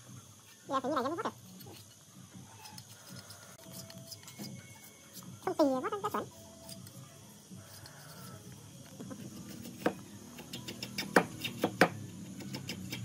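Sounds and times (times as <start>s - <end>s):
blade scraping bamboo: 0.7s - 7.0s.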